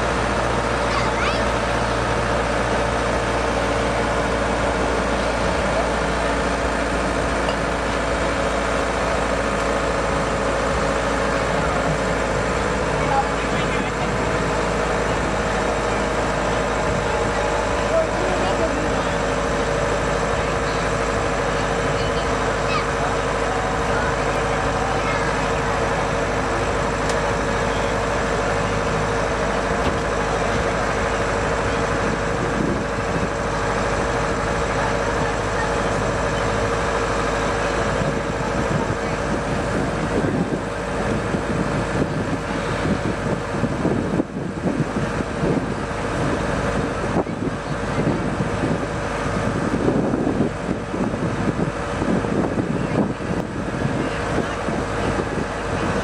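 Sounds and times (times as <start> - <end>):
engine humming steadily: 0.0 - 56.0.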